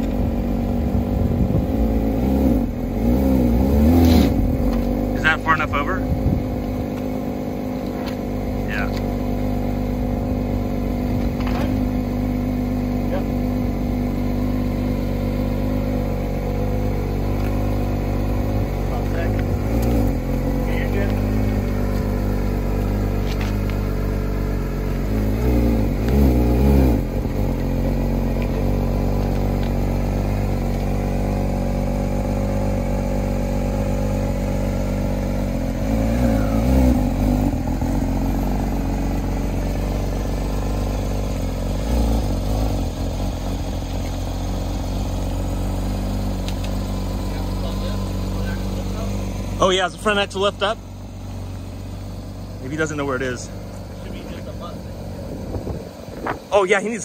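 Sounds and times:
car engine idling: 0.0 - 57.0.

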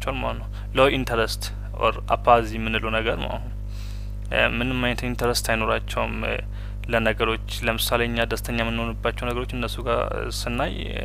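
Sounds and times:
lecturer speaking: 0.0 - 3.6, 4.3 - 11.0
low electrical hum: 0.0 - 11.0.

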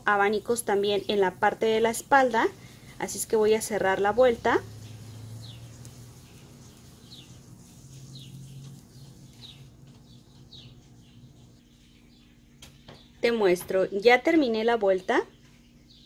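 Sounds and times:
low steady hum: 0.0 - 16.0
small bird chirping: 2.5 - 13.4.

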